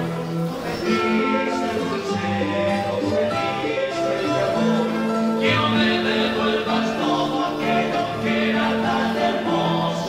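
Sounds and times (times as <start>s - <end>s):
men singing in harmony: 0.0s - 10.0s
nylon-string guitar: 0.0s - 10.0s
ronroco: 0.0s - 10.0s.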